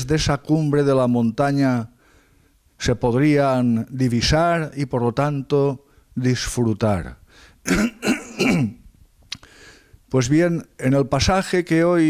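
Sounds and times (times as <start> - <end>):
man clearing his throat: 7.7 - 8.8.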